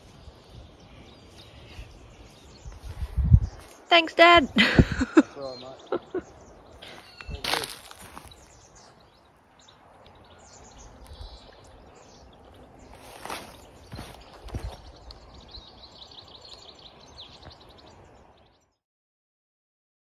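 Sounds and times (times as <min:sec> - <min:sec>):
small birds chirping: 0:00.0 - 0:18.8.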